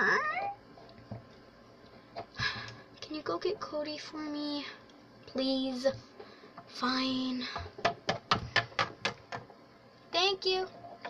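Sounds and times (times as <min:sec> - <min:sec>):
meow-like cry: 0:00.0 - 0:00.6.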